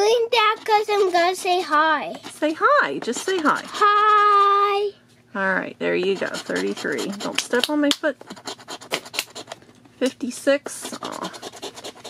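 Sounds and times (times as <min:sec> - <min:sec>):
coin scratching lottery ticket: 0:00.3 - 0:04.8, 0:06.0 - 0:09.6, 0:10.6 - 0:12.0.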